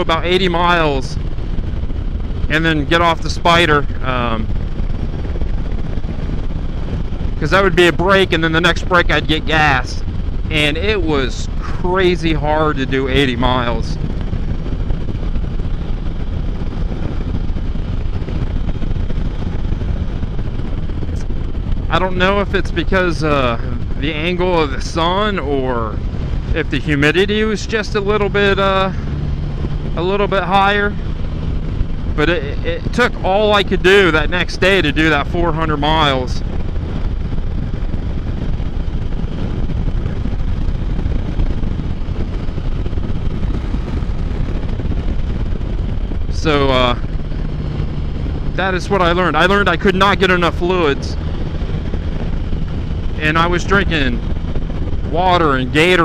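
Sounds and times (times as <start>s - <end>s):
motorcycle engine rumble: 0.0s - 56.0s
wind and road rush: 0.0s - 56.0s.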